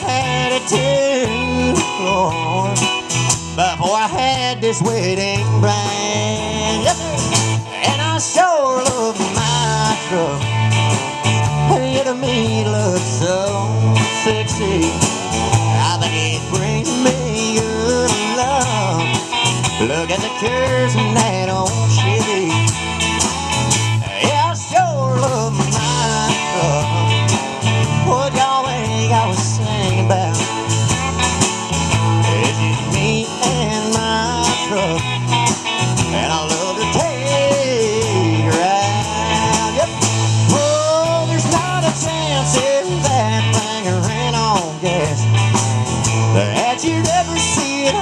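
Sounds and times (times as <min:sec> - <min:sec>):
bass guitar: 0:00.0 - 0:48.0
drums keeping a steady beat: 0:00.0 - 0:48.0
lead guitar with bent notes: 0:00.0 - 0:48.0
strummed acoustic guitar: 0:00.0 - 0:48.0.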